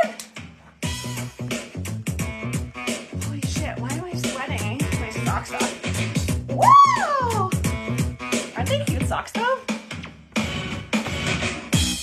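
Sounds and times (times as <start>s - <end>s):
hip-hop beat with bass: 0.0s - 12.0s.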